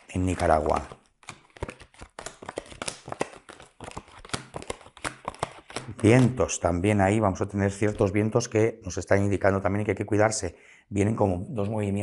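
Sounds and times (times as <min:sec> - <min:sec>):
cards tapping on a mat: 0:00.7 - 0:06.0.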